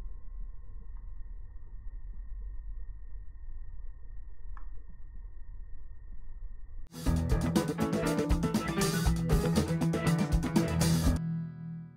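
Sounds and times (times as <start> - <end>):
faint high whine: 0.0 - 6.9.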